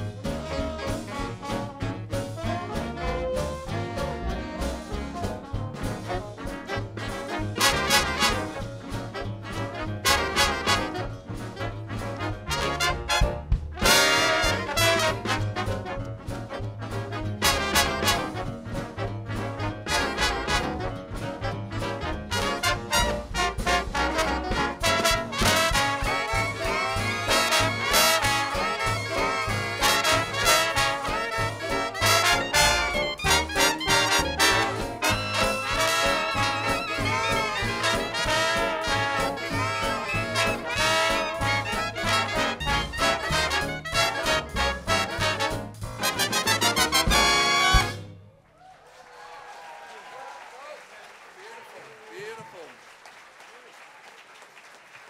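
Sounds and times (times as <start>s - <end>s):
drum beat: 0.0s - 48.0s
trumpets and trombones: 0.0s - 48.3s
jazz big band playing: 0.0s - 48.4s
audience applause: 48.5s - 55.0s.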